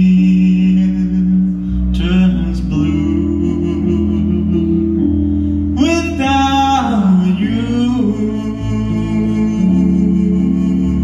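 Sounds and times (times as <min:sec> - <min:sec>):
electric keyboard blues chords: 0:00.0 - 0:11.0
person singing: 0:00.0 - 0:11.0.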